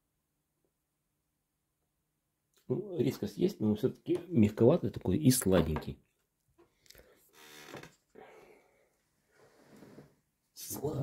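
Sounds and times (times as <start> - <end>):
man breathing faintly: 8.1 - 9.8.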